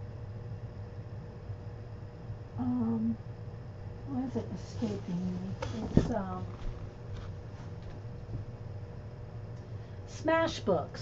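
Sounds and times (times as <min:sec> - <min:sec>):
faint constant tone: 0:00.0 - 0:11.0
low background hum: 0:00.0 - 0:11.0.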